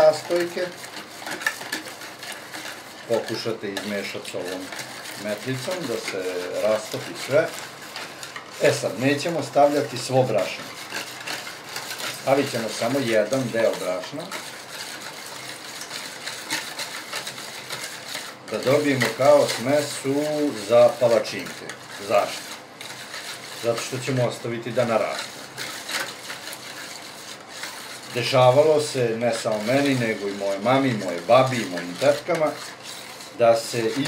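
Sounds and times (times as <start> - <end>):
whisk clicking against bowl: 0.0 - 34.0
whisk stirring liquid in bowl: 0.0 - 34.0.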